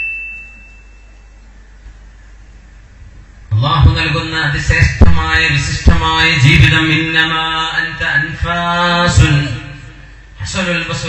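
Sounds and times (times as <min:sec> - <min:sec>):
man chanting melodically: 0:03.5 - 0:11.0.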